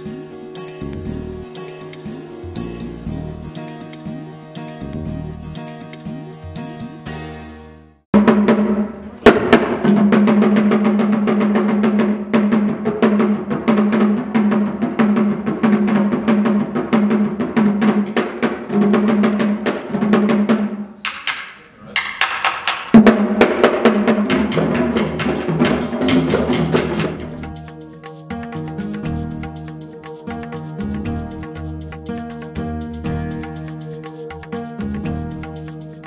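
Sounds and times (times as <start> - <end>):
wooden hand drums playing: 0.0 - 7.2, 8.2 - 36.0.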